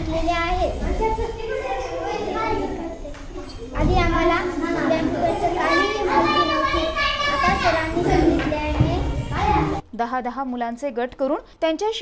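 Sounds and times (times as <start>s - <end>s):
young girl speaking: 0.0s - 9.9s.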